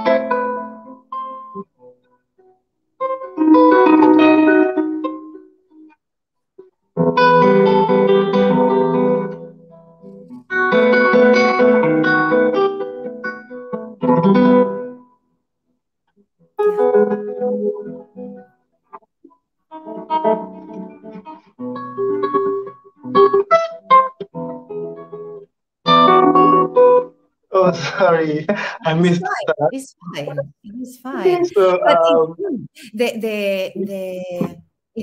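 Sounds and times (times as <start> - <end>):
classical guitar fingerstyle: 0.0 - 6.0, 6.6 - 15.1, 16.6 - 27.2.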